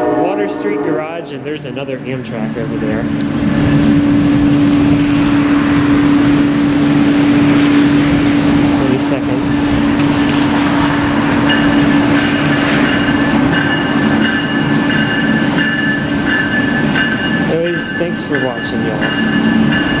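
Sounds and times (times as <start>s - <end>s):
train low hum: 0.0s - 20.0s
high steady whines: 2.4s - 20.0s.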